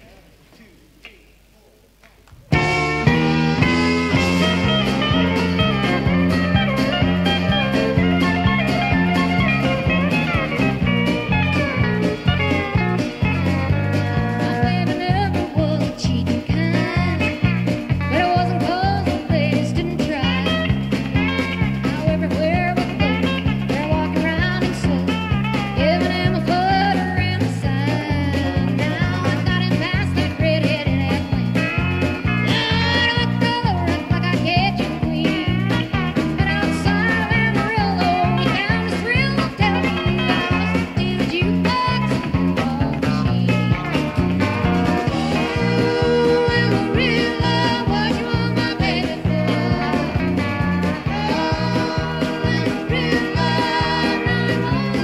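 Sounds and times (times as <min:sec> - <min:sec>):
bending lead guitar lines: 0:02.4 - 0:55.0
live country-rock band: 0:02.5 - 0:55.0
steady bass beat: 0:02.5 - 0:55.0.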